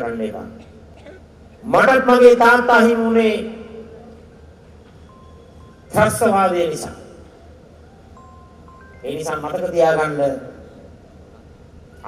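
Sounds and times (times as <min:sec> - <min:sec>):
amplified speech with echo: 0:01.6 - 0:04.0, 0:05.9 - 0:07.2.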